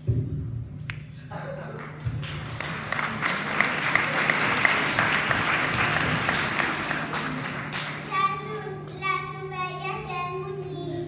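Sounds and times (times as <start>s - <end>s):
audience applauding: 1.7s - 8.3s.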